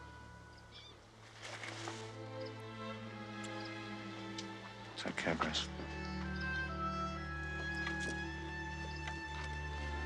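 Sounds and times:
faint bird chirps: 0.4s - 1.1s.

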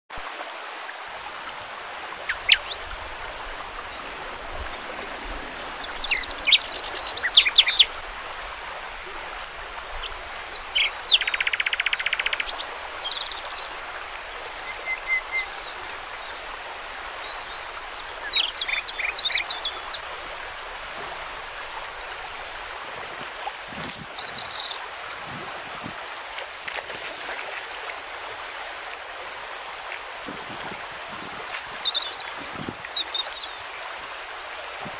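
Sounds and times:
river running over gravel: 0.2s - 34.9s
small birds singing: 2.2s - 8.1s, 9.3s - 20.1s, 23.7s - 25.9s, 30.3s - 34.1s.

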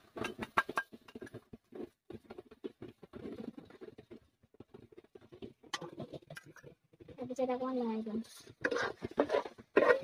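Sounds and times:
paste crackling in hot oil: 0.0s - 10.0s.

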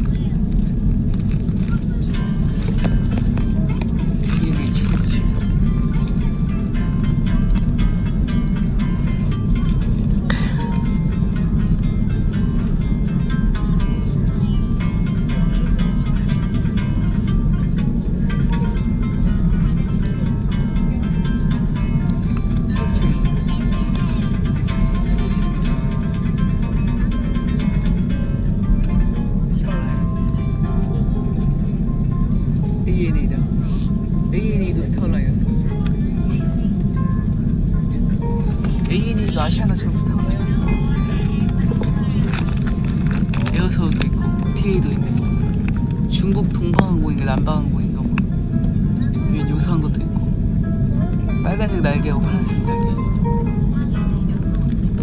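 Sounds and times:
aircraft cabin rumble: 0.0s - 55.0s
music: 0.0s - 55.0s.

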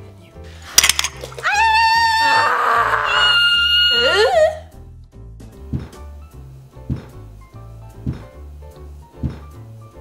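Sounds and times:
women screaming: 1.4s - 4.7s
background music with low beat: 4.8s - 10.0s.

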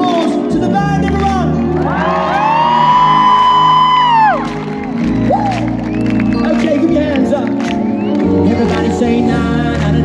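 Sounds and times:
live pop band playing: 0.0s - 10.0s
person whooping: 1.9s - 4.6s.

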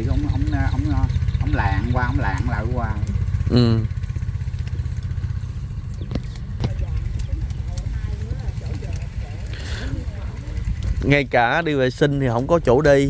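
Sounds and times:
small engine idling: 0.0s - 13.0s
faint voices: 6.0s - 12.7s.

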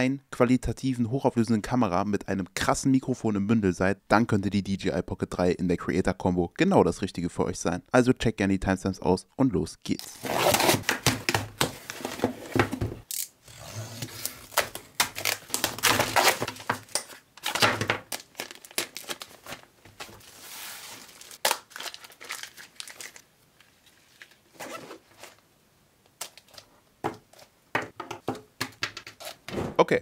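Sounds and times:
packaging rustling: 14.0s - 25.4s.

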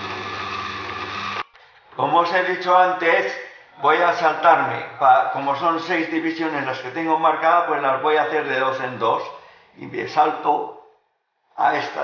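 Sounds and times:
electric motor humming: 0.0s - 1.4s.

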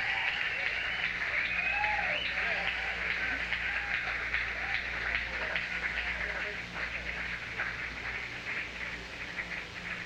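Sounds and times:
audience cheering and whooping: 0.0s - 5.3s
low electrical hum: 0.0s - 10.0s.

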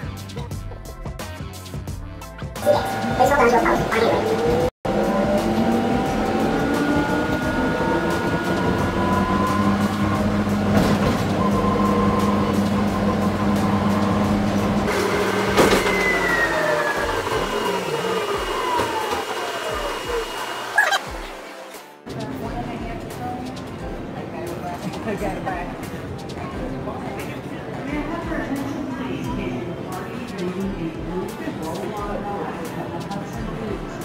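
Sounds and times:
electric train motor whine: 2.6s - 21.7s.

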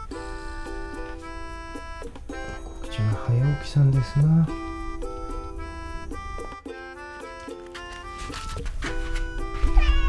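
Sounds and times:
light background music: 0.0s - 10.0s
cat meowing: 9.6s - 10.0s.

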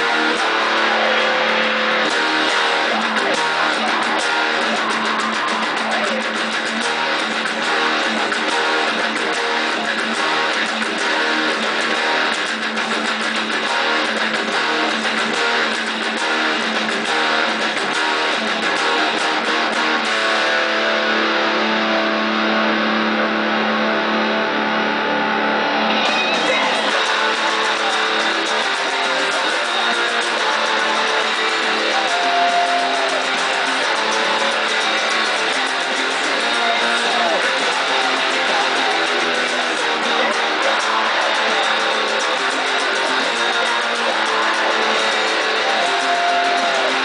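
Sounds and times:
electric guitar through amplifier: 0.0s - 47.0s.

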